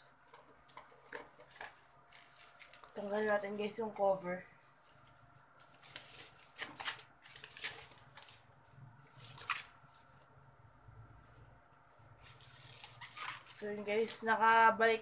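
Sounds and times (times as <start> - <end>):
plastic bag crinkling: 0.6 - 10.1, 12.2 - 14.3.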